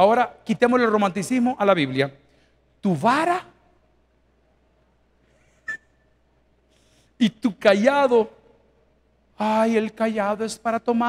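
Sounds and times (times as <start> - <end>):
faint breath: 6.7 - 7.2.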